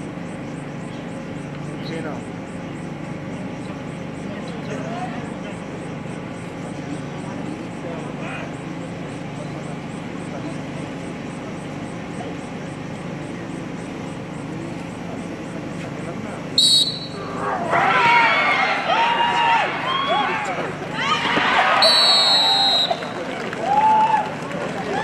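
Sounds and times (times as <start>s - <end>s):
crowd murmur: 0.7s - 25.0s
referee's whistle: 16.6s - 17.3s, 21.7s - 23.1s
crowd shouting: 16.8s - 25.0s.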